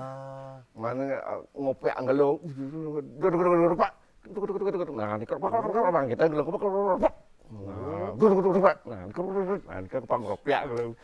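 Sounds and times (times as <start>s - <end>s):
man vocalizing wordless syllables: 0.0s - 11.0s.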